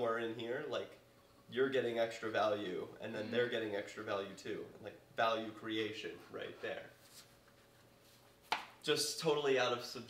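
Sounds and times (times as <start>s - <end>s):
faint steady hum: 0.0s - 10.0s
person speaking: 1.5s - 7.0s.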